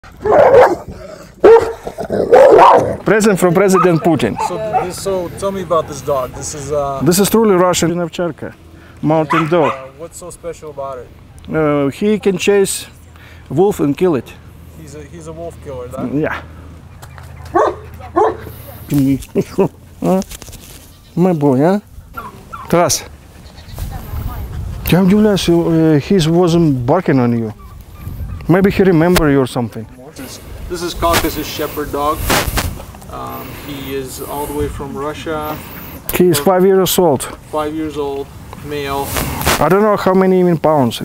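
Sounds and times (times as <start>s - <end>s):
dog barking: 0.2s - 2.9s, 3.7s - 5.1s, 9.3s - 9.9s, 17.5s - 18.5s.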